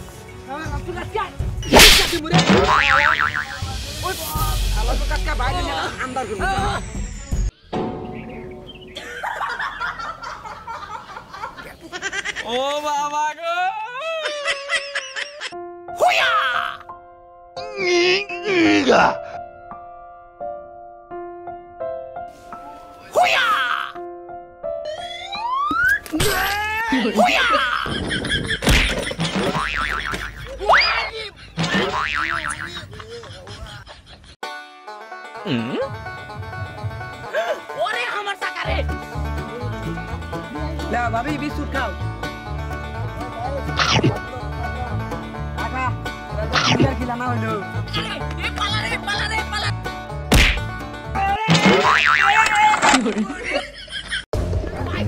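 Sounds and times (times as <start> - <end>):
background music: 0.0 - 12.4, 13.8 - 32.6, 34.4 - 52.5
cartoon boing sound effect: 2.4 - 3.6.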